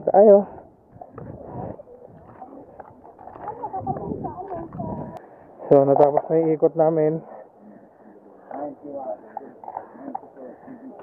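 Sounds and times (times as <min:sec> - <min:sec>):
footsteps on stone path: 0:00.8 - 0:05.3
faint chatter of people: 0:01.0 - 0:11.0.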